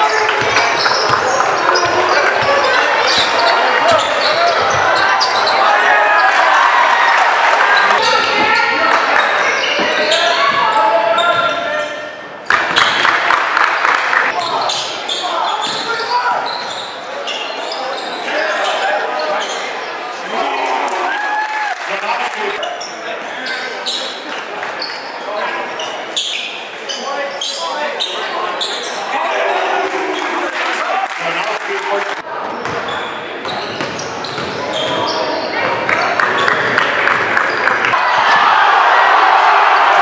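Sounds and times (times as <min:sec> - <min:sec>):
basketball bouncing on wooden floor: 0:33.8 - 0:34.6.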